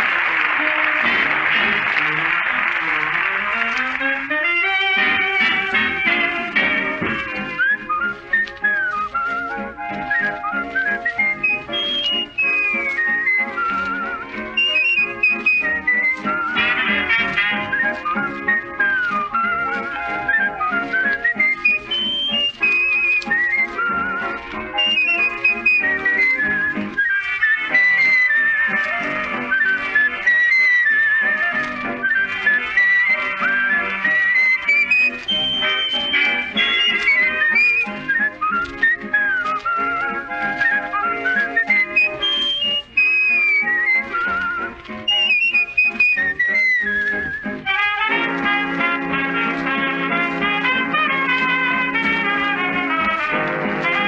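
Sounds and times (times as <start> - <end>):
brass playing held chords: 0.0 - 8.7, 9.3 - 30.2, 47.6 - 54.0
dance orchestra: 0.0 - 54.0
man whistling a melody: 5.0 - 54.0.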